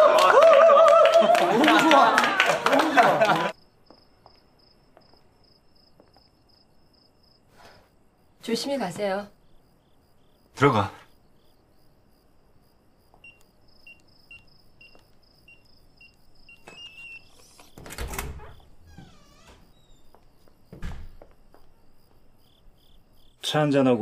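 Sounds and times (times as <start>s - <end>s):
crickets chirping: 3.5s - 24.0s.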